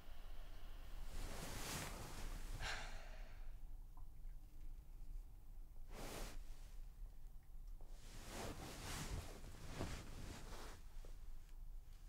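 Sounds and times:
faint low room hum: 0.0 - 12.0
person sighing: 2.6 - 3.5.

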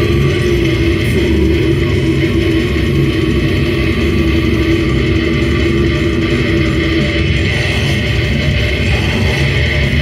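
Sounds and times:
bass guitar: 0.0 - 10.0
distorted electric guitar: 0.0 - 10.0
drums: 0.0 - 10.0.

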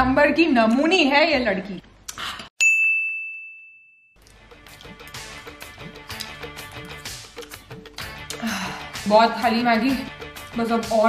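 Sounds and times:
bright bell-like ding: 2.6 - 4.1.

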